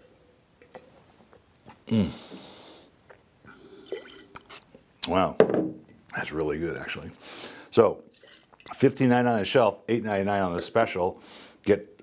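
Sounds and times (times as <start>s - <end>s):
faint low mouth sounds: 0.6s - 4.8s.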